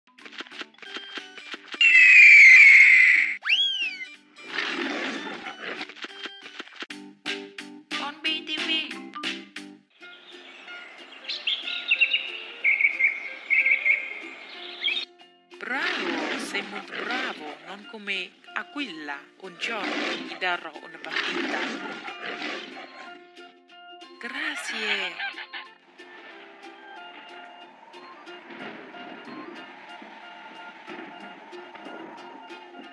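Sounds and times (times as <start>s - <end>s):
children's background music: 0.1s - 32.9s
eagle screech: 1.8s - 4.1s
whistle-like rising glide: 1.8s - 4.1s, 26.0s - 32.9s
lion roar: 21.1s - 23.2s.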